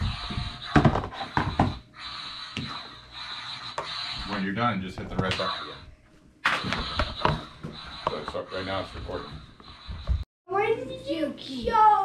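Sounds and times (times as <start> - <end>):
room noise: 0.0 - 12.0.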